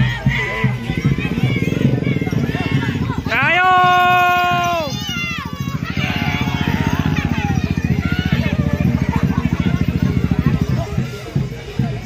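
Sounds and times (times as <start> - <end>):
people shouting: 0.0 - 11.6
motorcycle engine running: 0.0 - 12.0.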